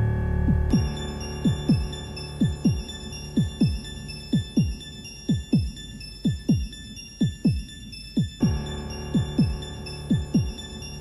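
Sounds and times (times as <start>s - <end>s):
synthesizer drone: 0.0s - 7.0s, 8.4s - 11.0s
double bass heartbeat beat: 0.4s - 10.8s.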